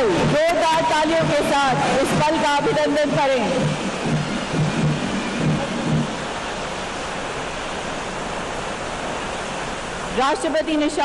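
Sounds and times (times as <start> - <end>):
steady rushing outdoor ambience: 0.0 - 11.0.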